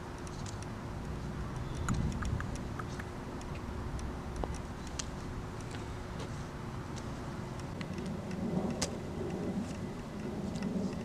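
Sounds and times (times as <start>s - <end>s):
low outdoor rumble: 0.0s - 11.0s
sharp click: 1.7s - 5.1s.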